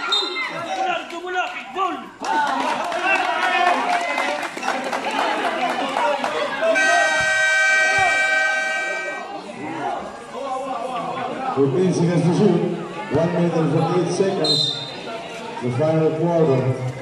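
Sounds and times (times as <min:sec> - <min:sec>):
spectators talking and shouting: 0:00.0 - 0:17.0
basketball game horn blast: 0:06.7 - 0:09.3.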